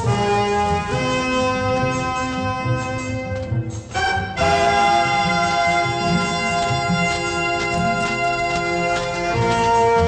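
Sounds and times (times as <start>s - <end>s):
orchestral sustained chord: 0.0s - 10.0s.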